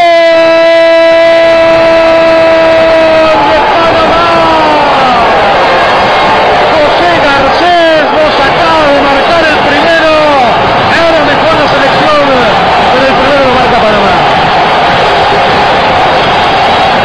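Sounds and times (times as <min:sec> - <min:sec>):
man shouting: 0:00.0 - 0:05.6, 0:06.6 - 0:14.4.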